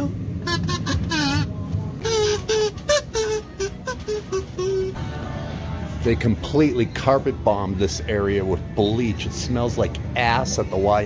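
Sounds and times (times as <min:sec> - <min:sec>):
kazoo humming: 0:00.4 - 0:05.0.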